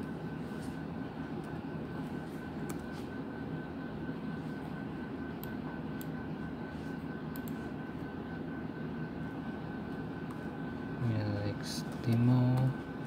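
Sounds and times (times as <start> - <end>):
low machine hum: 0.0 - 13.0.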